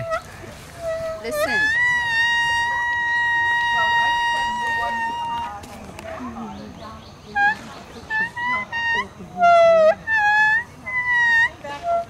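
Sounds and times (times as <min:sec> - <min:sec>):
leaf whistle high note: 0:00.0 - 0:05.6.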